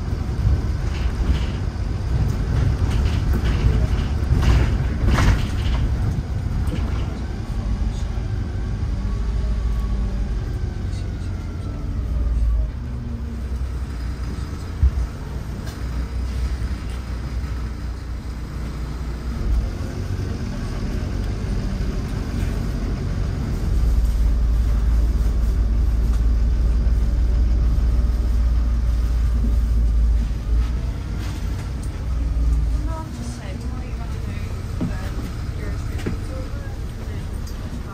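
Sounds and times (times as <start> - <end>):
bus engine and road rumble: 0.0 - 37.9.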